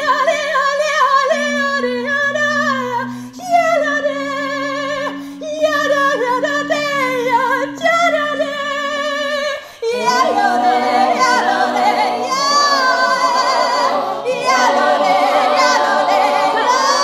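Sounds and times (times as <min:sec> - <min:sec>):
woman singing with vibrato: 0:00.0 - 0:17.0
low vocal drone: 0:01.2 - 0:17.0
choir singing: 0:09.8 - 0:17.0.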